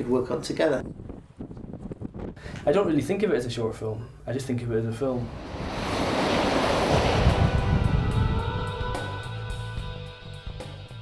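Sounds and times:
lorry passing at speed: 5.1s - 8.9s
music: 7.4s - 11.0s.

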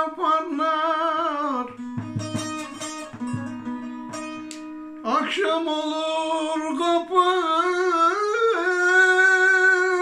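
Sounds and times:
long-necked lute plucked notes: 1.7s - 5.3s.

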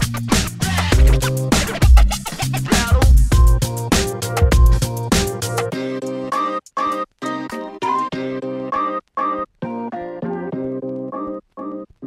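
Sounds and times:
upbeat electronic music: 0.0s - 11.9s
record scratch effects: 0.0s - 12.0s.

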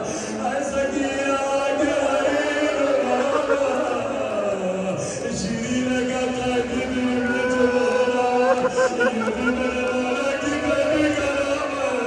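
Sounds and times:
men chanting: 0.0s - 12.0s.

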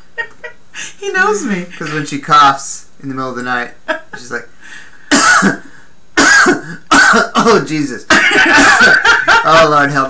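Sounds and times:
man coughing harshly: 5.1s - 9.0s.

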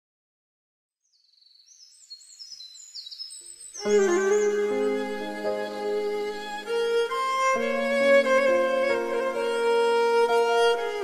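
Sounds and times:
bird chirping: 1.0s - 11.0s.

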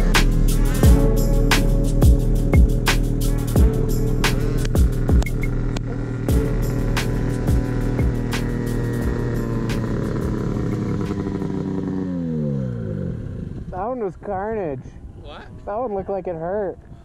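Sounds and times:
background music with beat: 0.0s - 5.6s, 6.3s - 11.2s
snowmobile engine running: 0.0s - 16.7s.

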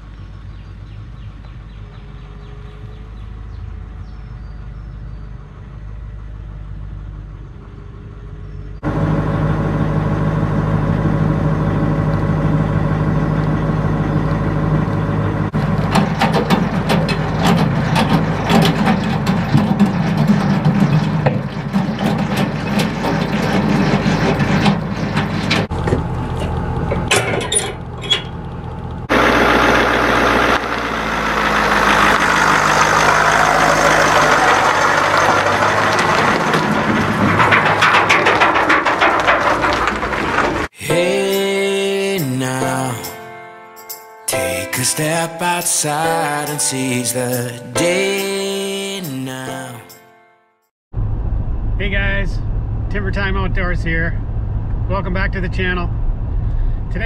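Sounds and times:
pickup truck engine running: 0.0s - 40.8s.

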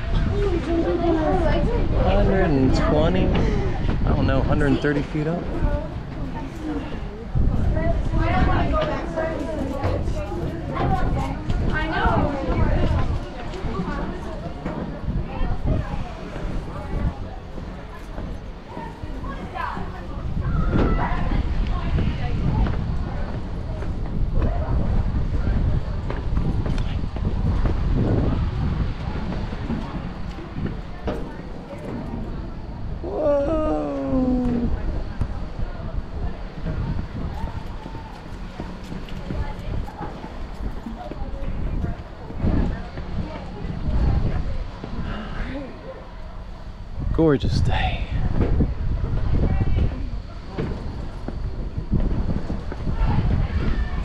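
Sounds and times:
faint background voices: 0.0s - 54.0s
wind rumbling on microphone: 0.0s - 54.0s
person calling out: 33.0s - 34.8s.

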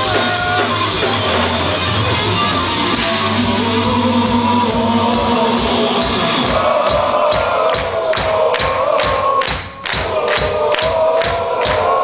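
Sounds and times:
drum hits on steady beat: 0.0s - 2.1s, 2.9s - 12.0s
heavy metal band playing live: 0.0s - 12.0s.

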